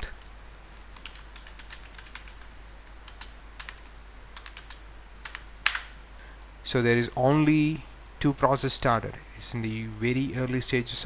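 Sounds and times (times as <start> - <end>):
computer keyboard typing: 0.9 - 6.5.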